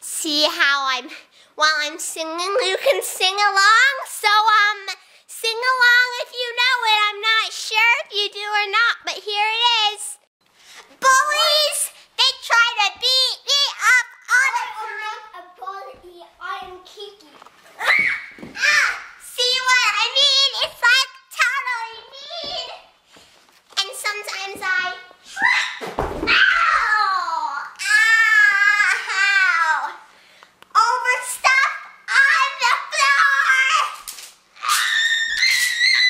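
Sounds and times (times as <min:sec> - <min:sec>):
girl yelling: 0:11.0 - 0:15.2, 0:17.8 - 0:20.6, 0:24.4 - 0:30.0, 0:30.8 - 0:34.0
thud of fall to floor: 0:25.8 - 0:26.6.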